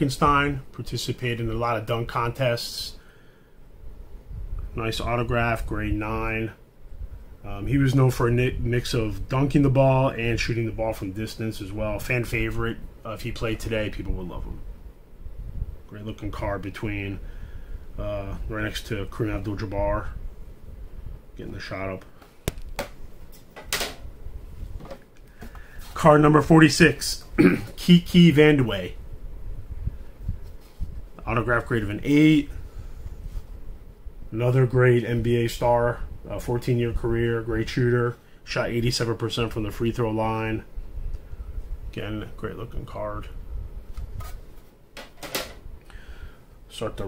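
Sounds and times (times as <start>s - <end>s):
scrape or rustle: 30.2s - 31.0s, 32.7s - 33.6s, 43.9s - 44.8s.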